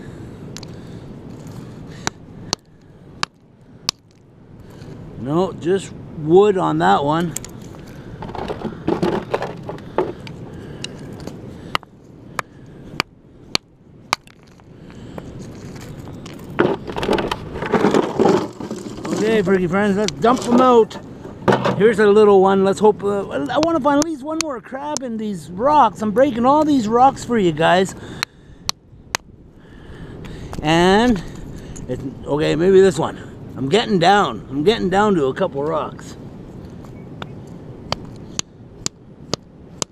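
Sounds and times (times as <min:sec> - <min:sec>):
stones clattering: 0:01.3 - 0:04.9, 0:07.2 - 0:10.3, 0:14.1 - 0:14.7, 0:15.4 - 0:22.0
hammer cracking rock: 0:11.7 - 0:14.6.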